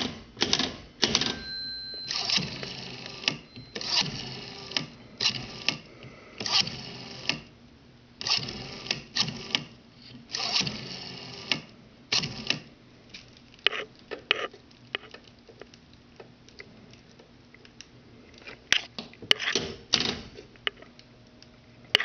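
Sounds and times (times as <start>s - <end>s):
rotary phone dial clicking and whirring: 0.4s - 7.5s, 8.2s - 9.7s, 10.3s - 12.7s.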